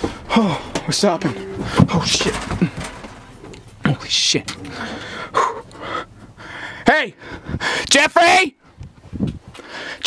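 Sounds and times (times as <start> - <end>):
man breathing hard and gasping: 4.6 - 7.9, 9.5 - 10.0.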